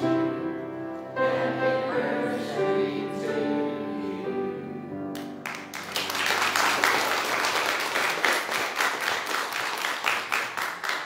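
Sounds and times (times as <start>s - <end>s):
crowd applauding: 5.2s - 11.0s.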